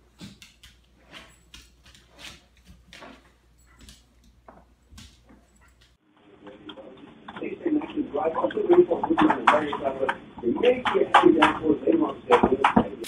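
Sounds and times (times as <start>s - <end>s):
dog claws clicking on tiles: 0.0s - 6.0s
voices in a room: 5.9s - 13.0s.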